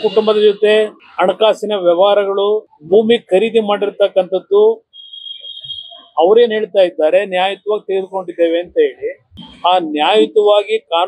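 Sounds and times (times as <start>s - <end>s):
man speaking: 0.0s - 4.8s, 6.2s - 11.0s
high-pitched electronic beep: 4.9s - 6.4s, 9.3s - 10.3s.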